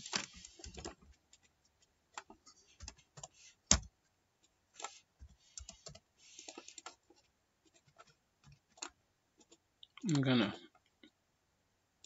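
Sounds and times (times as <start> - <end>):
computer keyboard typing: 4.8 - 7.0, 7.7 - 9.6.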